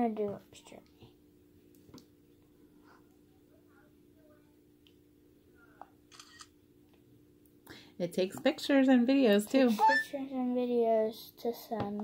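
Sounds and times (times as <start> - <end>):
electronic camera shutter: 6.1 - 6.5.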